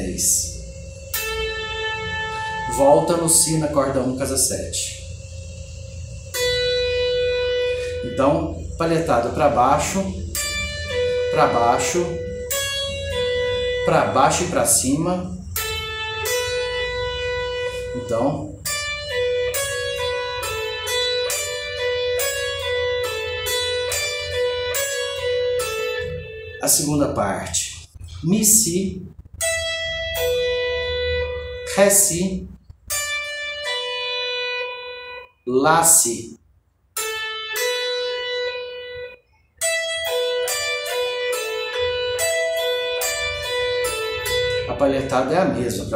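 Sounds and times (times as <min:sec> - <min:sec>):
electric guitar note ringing: 0:00.0 - 0:36.2, 0:36.9 - 0:45.9.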